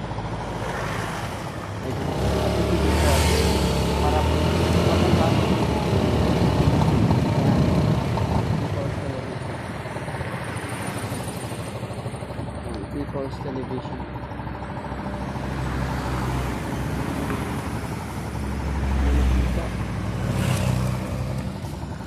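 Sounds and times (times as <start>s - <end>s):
vehicle driving past: 0.6s - 6.7s.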